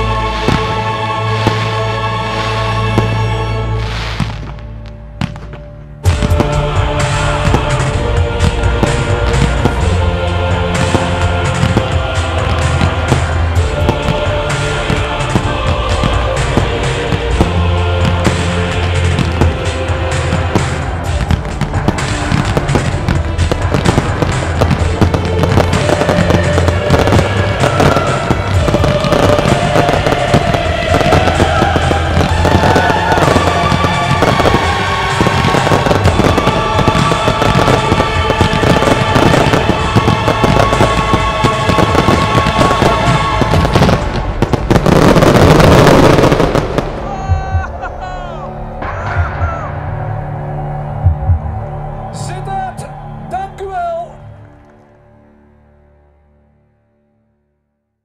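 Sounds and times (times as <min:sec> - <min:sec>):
fireworks bursting and crackling: 0:00.0 - 0:49.7
music: 0:00.0 - 0:58.0.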